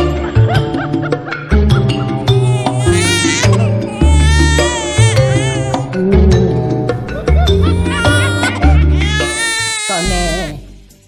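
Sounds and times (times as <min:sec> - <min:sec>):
high-pitched crying wail: 0:02.3 - 0:06.0, 0:07.6 - 0:10.6.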